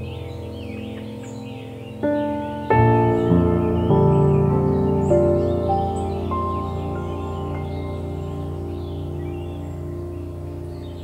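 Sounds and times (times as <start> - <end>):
birds chirping: 0.0 - 11.0
soft background music: 0.0 - 11.0.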